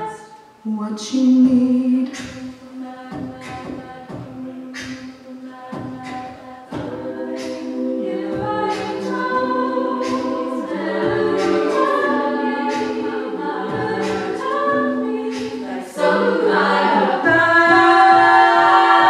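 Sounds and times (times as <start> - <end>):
female a cappella group singing: 0.0 - 19.0.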